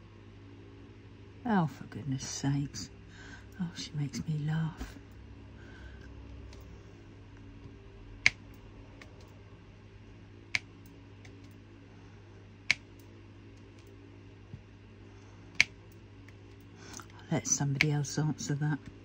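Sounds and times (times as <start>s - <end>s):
electric fan humming: 0.0s - 19.0s.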